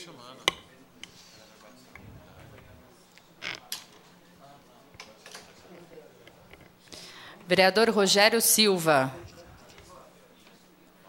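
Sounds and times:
short creak: 2.0 - 3.7.

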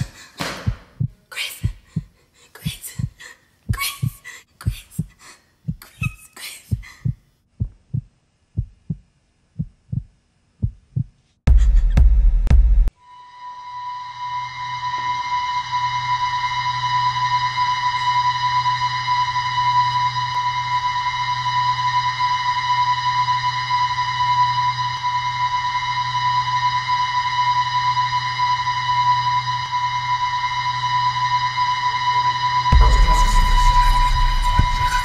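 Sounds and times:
low drone: 13.3 - 35.0.

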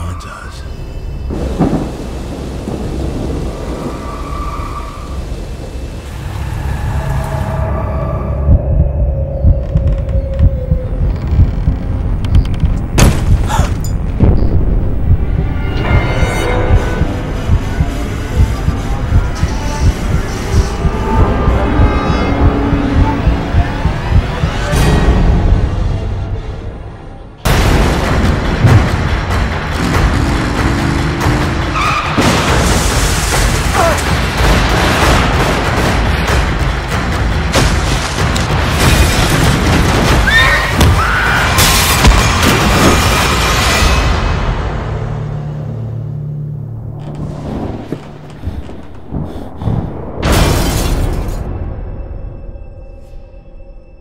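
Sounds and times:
heavy rain pouring: 1.3 - 6.6
low rolling thunder: 1.3 - 6.6
tire squeal: 3.7 - 5.4, 31.6 - 32.2
heavy low thuds: 8.4 - 15.6, 16.7 - 24.7.

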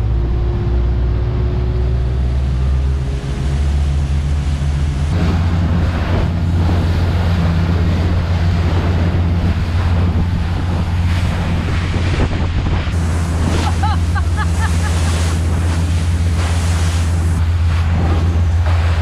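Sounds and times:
motorboat engine drone: 0.0 - 19.0
rushing water and spray: 0.0 - 19.0
wind buffeting microphone: 0.0 - 19.0.

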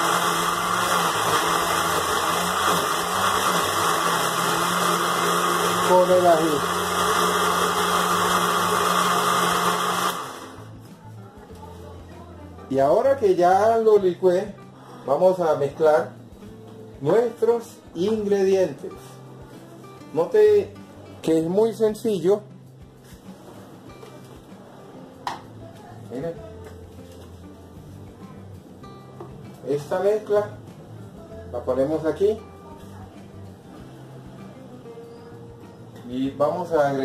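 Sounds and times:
blender running: 0.0 - 10.7.

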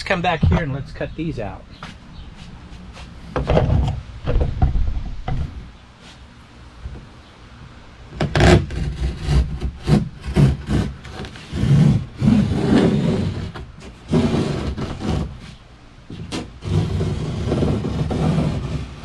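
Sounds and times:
cloth rubbing on wood: 9.8 - 19.0.

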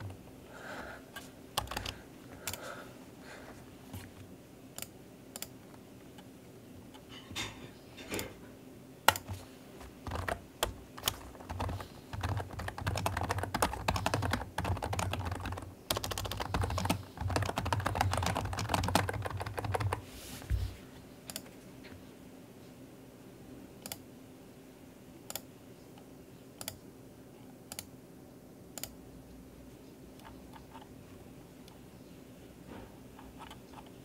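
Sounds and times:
computer keyboard typing: 1.6 - 2.6, 9.1 - 20.0, 21.3 - 21.5, 26.6 - 26.8, 33.2 - 34.0.

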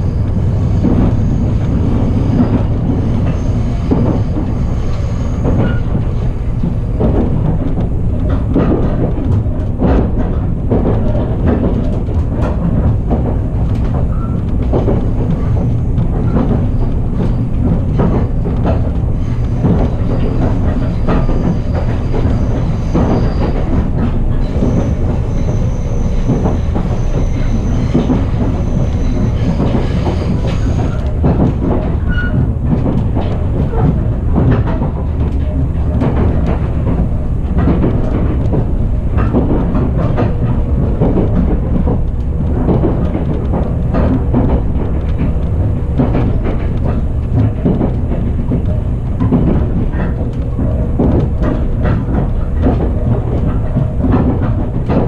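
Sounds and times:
train ride low rumble: 0.0 - 55.0
wheels clicking on track: 0.0 - 55.0.

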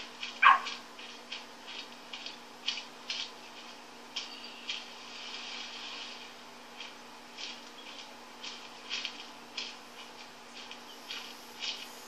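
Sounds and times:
jogging footfalls: 0.0 - 12.0
dog yelp: 0.4 - 0.8.

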